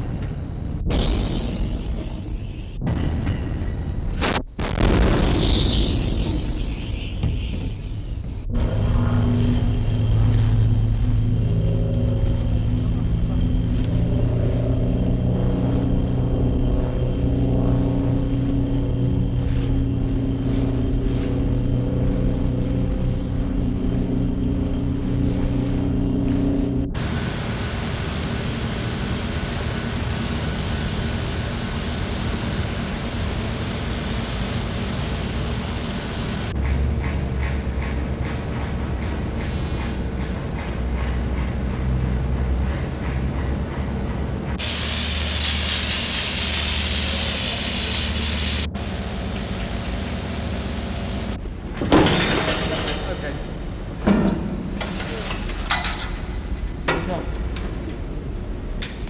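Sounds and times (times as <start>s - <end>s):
engine droning: 8.2s - 45.2s, 46.4s - 51.8s
rough hissing mechanical noise: 44.5s - 51.5s, 53.8s - 56.8s.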